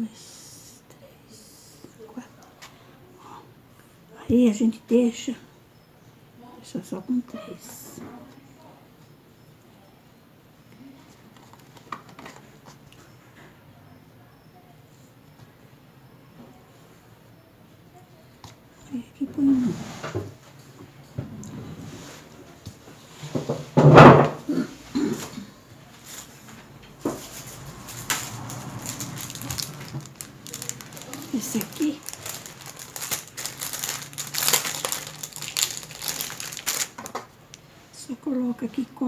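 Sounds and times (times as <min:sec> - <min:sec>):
small crackles: 0:26.0 - 0:37.7
craft materials crinkling: 0:27.2 - 0:37.6.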